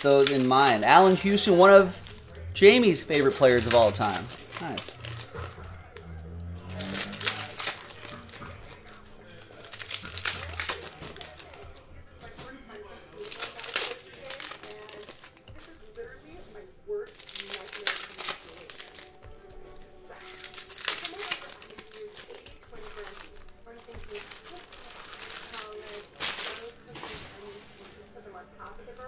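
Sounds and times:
foil wrappers crinkling and tearing: 0:00.0 - 0:29.0.

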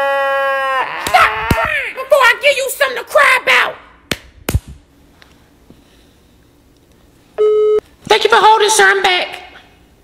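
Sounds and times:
electronic telephone beep: 0:07.4 - 0:07.8.

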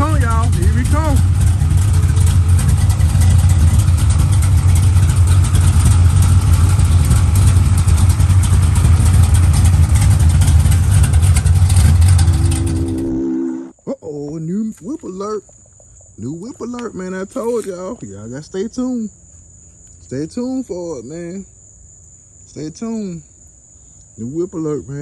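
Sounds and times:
car engine idling: 0:00.0 - 0:13.5.

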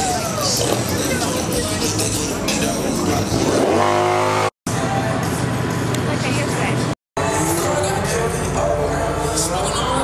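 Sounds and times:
voices: 0:00.0 - 0:03.4
music: 0:00.0 - 0:03.7, 0:04.7 - 0:10.0
car engine revving: 0:00.4 - 0:04.5
engine running steadily: 0:04.7 - 0:10.0.

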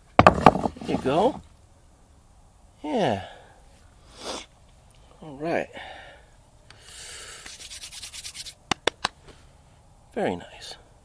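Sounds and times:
scratchy rubbing by hand: 0:07.4 - 0:08.6.

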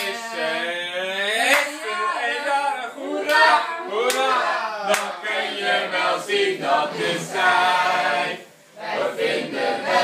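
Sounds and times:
group singing without accompaniment: 0:00.0 - 0:10.0.

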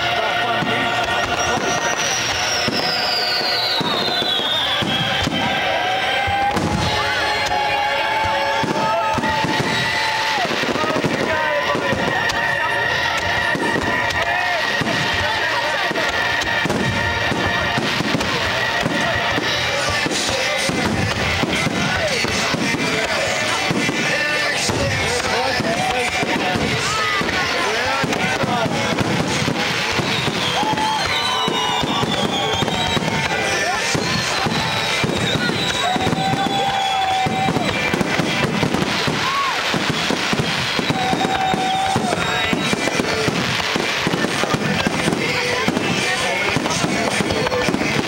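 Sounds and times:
fireworks bursting: 0:00.0 - 0:48.0
music playing: 0:00.0 - 0:48.0
high descending whistle: 0:01.2 - 0:10.5, 0:29.9 - 0:37.8.

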